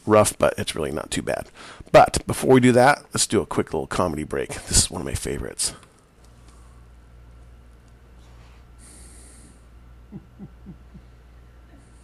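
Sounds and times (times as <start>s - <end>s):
person chuckling: 10.0s - 11.2s.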